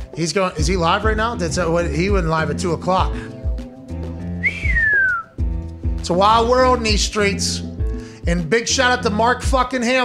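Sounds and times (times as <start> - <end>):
background music: 0.0 - 10.0
sliding whistle: 4.4 - 5.3.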